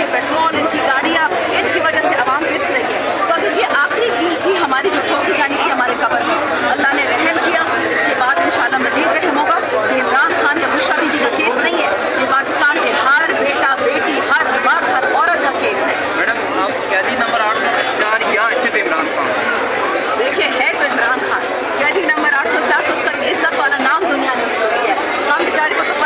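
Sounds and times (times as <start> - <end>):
woman speaking into a microphone: 0.0 - 16.0, 20.1 - 26.0
crowd chatter: 0.0 - 26.0.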